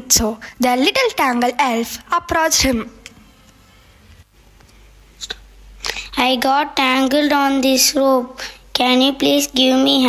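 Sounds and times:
person speaking: 0.0 - 3.2.

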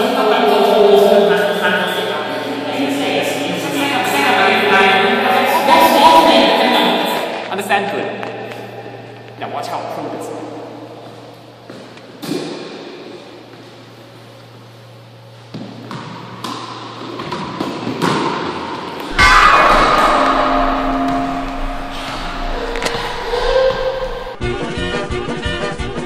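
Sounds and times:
dense sound with held tones: 19.1 - 24.4
racquetball hits echoing: 19.1 - 24.4.

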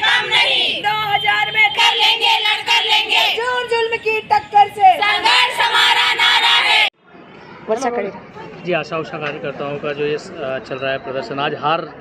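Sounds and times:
women singing a protest song: 0.0 - 7.0.

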